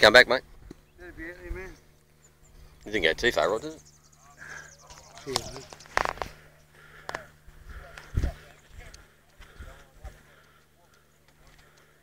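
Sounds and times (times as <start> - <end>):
indistinct voices talking: 0.0 - 12.0.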